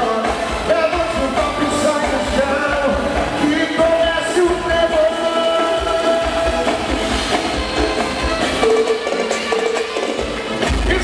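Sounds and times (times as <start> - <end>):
drum beat: 0.0 - 11.0.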